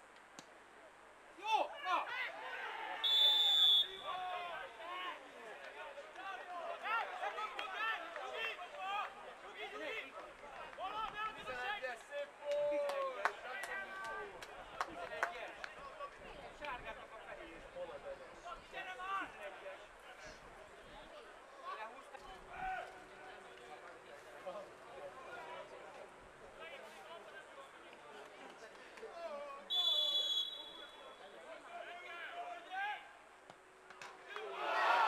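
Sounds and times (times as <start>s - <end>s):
players and spectators shouting: 1.4s - 11.9s, 34.3s - 35.0s
referee's whistle: 3.0s - 4.2s, 29.7s - 31.2s.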